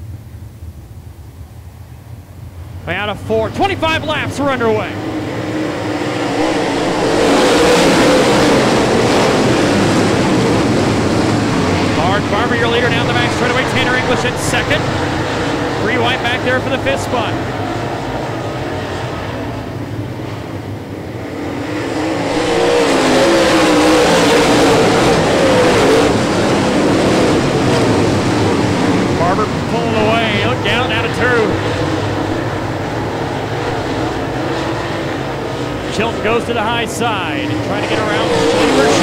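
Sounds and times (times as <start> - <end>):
race car engines racing: 2.3 - 39.0.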